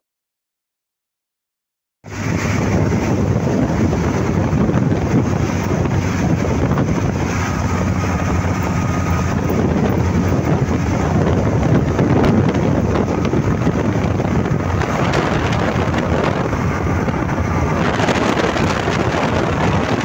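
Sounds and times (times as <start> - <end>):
motorcycle engine and road rumble: 2.1 - 20.0
wind rushing over microphone: 2.1 - 20.0.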